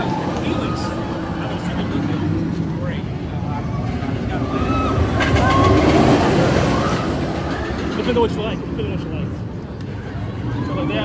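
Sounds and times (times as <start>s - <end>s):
roller coaster rumbling on track: 0.0s - 11.0s.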